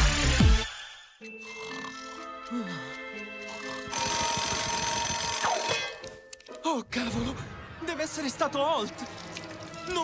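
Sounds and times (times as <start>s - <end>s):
soft background music: 1.2s - 10.0s
alarm clock ringing: 3.3s - 6.1s.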